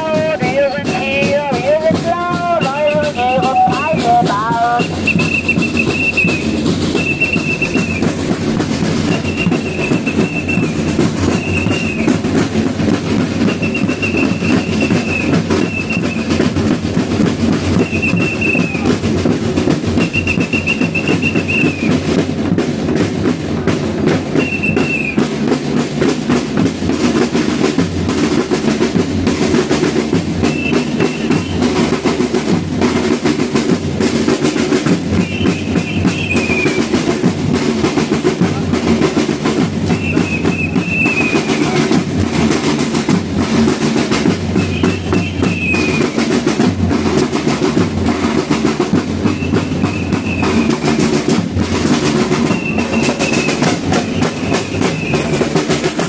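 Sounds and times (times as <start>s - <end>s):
dense rapid drumming: 0.0s - 56.0s
marching street crowd: 0.0s - 56.0s.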